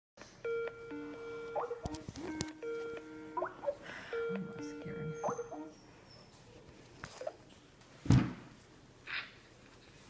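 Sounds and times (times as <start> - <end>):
electronic ringtone tune: 0.4 - 5.8.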